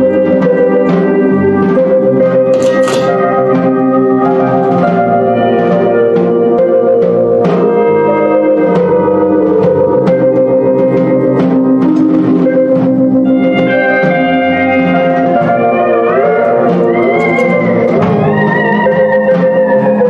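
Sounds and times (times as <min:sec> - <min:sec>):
drum kit beat: 0:00.0 - 0:20.0
electric bass: 0:00.0 - 0:20.0
organ-toned keyboard chords: 0:00.0 - 0:20.0.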